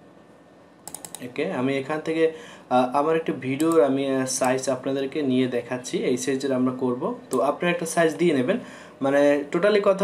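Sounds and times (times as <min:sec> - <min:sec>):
sharp computer clicks: 0:00.8 - 0:01.4, 0:03.6 - 0:04.7.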